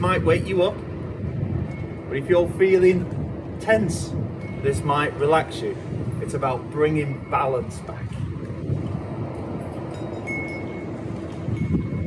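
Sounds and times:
wind buffeting microphone: 0.0s - 12.0s
wind chime high note: 9.9s - 10.9s.

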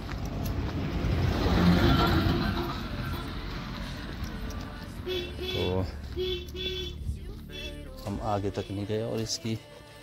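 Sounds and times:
car driving past: 0.2s - 5.1s.

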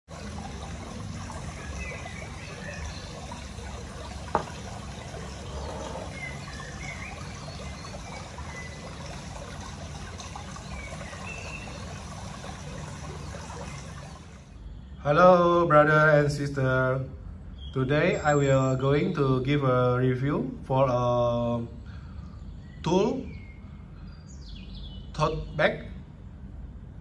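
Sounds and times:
trickling water: 0.0s - 15.0s, 16.4s - 20.1s.

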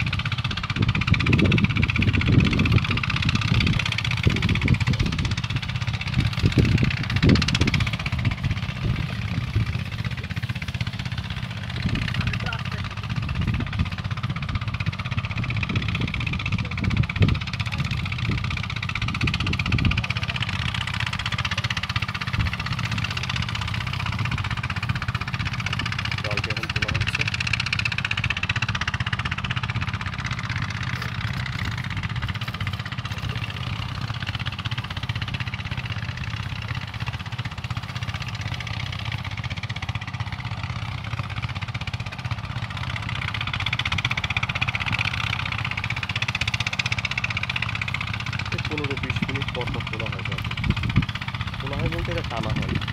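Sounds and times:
engine running steadily: 0.0s - 52.9s.

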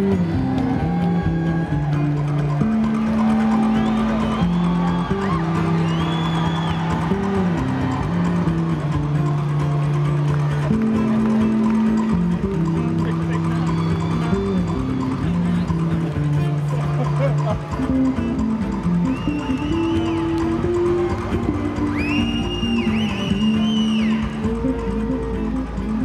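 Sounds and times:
rock band playing live: 0.0s - 26.0s.

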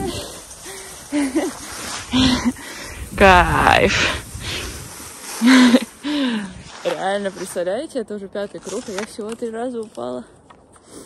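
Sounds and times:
steady hiss: 0.0s - 7.8s.

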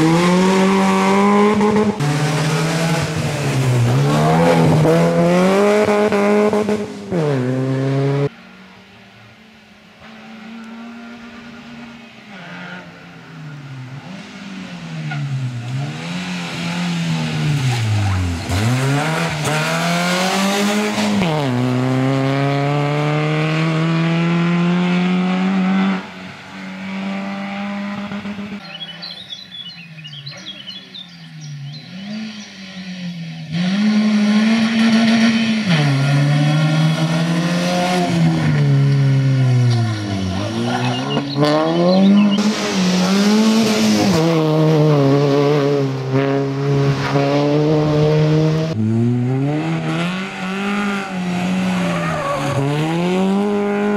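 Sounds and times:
rally car engine revving: 0.0s - 8.4s, 10.0s - 53.9s.

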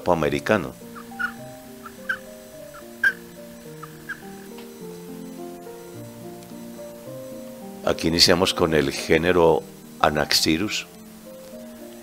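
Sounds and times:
background music: 0.0s - 12.0s
toad trilling: 0.8s - 4.6s.

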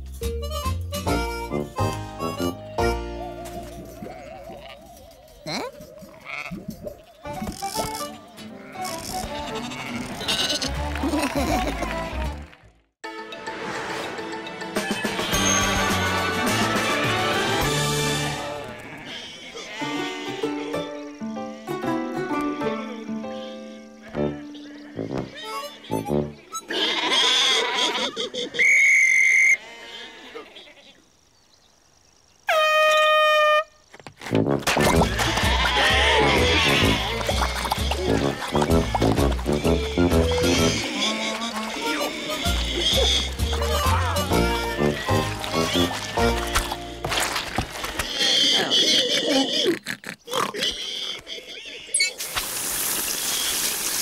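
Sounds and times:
cartoon music: 0.2s - 4.3s, 19.9s - 26.7s, 34.4s - 47.1s
cartoon animal vocal sounds: 4.0s - 8.1s, 48.2s - 52.0s
cartoon sheep bleating: 8.6s - 10.7s, 26.6s - 28.3s, 34.9s - 46.4s
shrill whistle blast: 28.6s - 29.6s.

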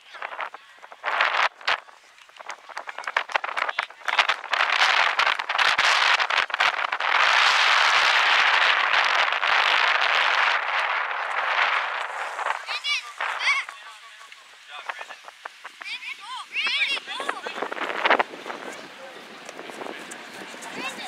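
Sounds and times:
people clapping: 1.1s - 14.8s
crowd cheering: 7.2s - 14.8s.

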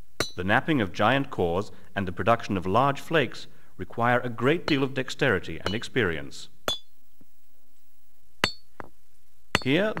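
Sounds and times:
stone striking flint: 5.6s - 5.9s, 6.6s - 7.0s, 8.4s - 10.0s.

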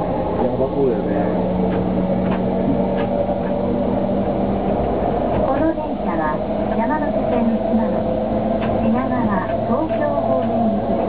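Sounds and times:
passengers talking: 0.0s - 11.0s
train running drone: 0.0s - 11.0s.

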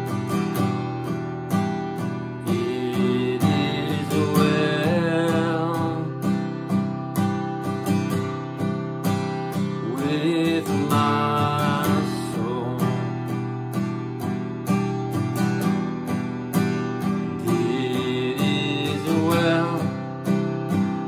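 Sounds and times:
acoustic guitar strumming: 0.0s - 21.0s
person singing softly: 2.5s - 6.2s, 9.8s - 13.1s, 17.4s - 20.0s.

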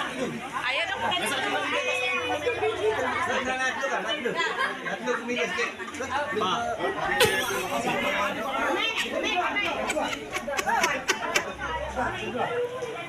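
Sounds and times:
crowd chattering: 0.0s - 13.0s.

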